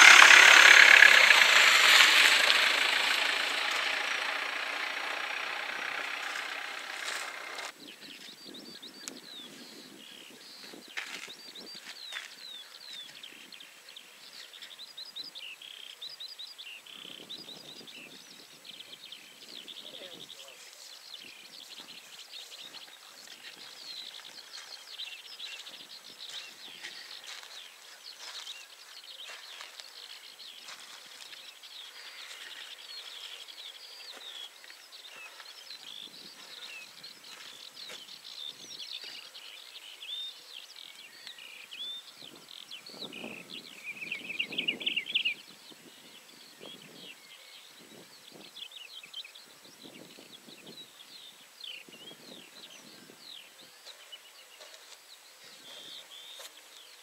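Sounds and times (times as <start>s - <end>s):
birds chirping and trilling: 0.0s - 57.0s.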